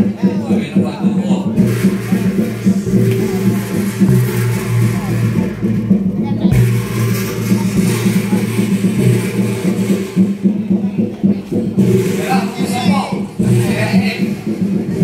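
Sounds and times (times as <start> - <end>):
people talking: 0.0 - 15.0
large gong ringing: 1.6 - 10.8.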